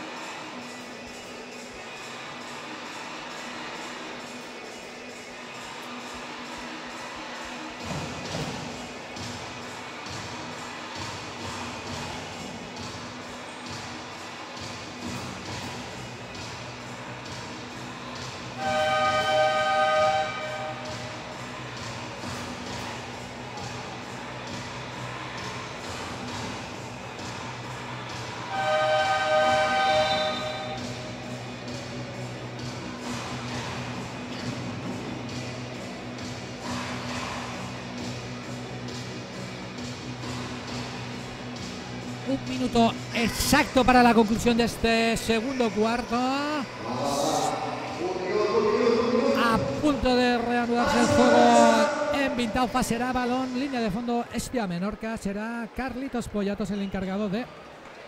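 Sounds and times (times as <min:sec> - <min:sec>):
arena music: 0:00.0 - 0:54.8
buzzing game horn: 0:18.6 - 0:21.1, 0:28.5 - 0:31.0.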